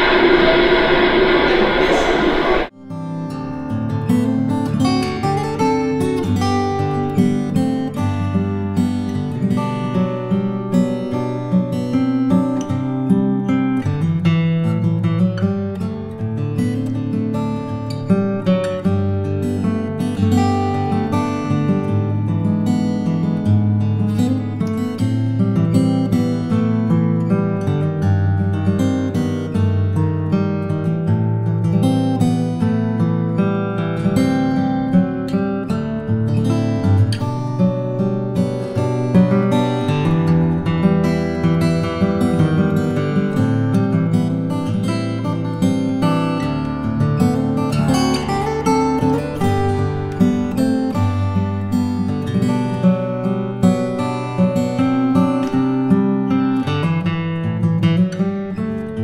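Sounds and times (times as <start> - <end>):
muffled video audio: 0.0 - 2.7
slack key guitar melody: 0.0 - 59.0.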